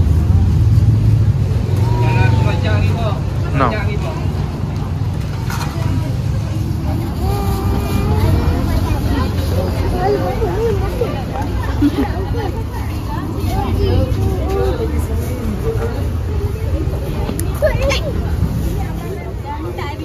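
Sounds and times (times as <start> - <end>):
traffic rumble: 0.0 - 20.0
voices chattering: 0.0 - 20.0.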